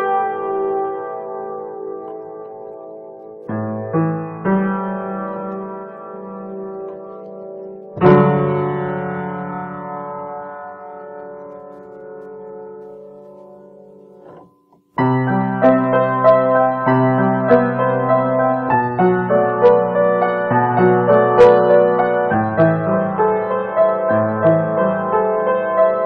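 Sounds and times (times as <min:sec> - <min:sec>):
solo piano: 0:00.0 - 0:26.0.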